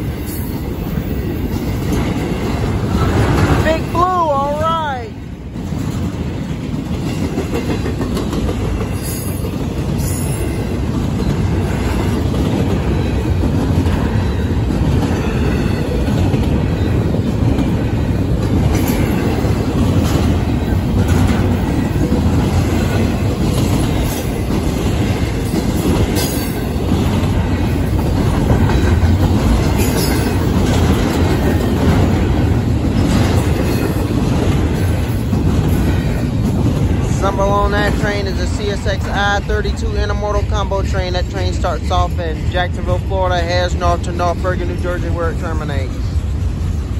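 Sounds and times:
train wheels rumbling on rail: 0.0s - 46.9s
wheels clicking over rail joints: 5.6s - 40.2s.

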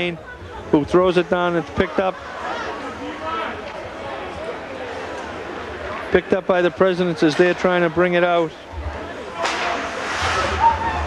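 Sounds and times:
skate blades scraping ice: 9.4s - 11.0s.

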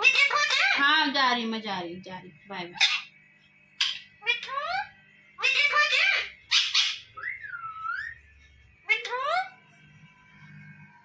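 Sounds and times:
parakeet whistling: 2.8s - 3.1s, 3.8s - 8.2s.

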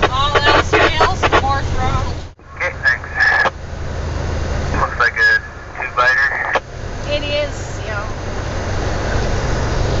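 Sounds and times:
truck engine rumbling: 0.0s - 10.0s.

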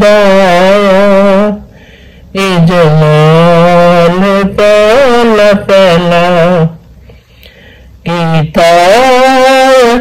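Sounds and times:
person singing devotional song: 0.0s - 10.0s.

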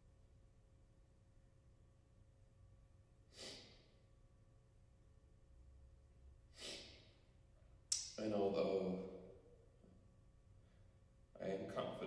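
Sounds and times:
man breathing: 3.3s - 4.0s, 6.5s - 7.3s.

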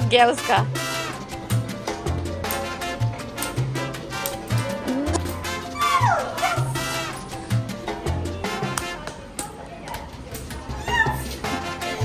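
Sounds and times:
upbeat salsa music: 0.0s - 9.4s, 10.6s - 12.0s.

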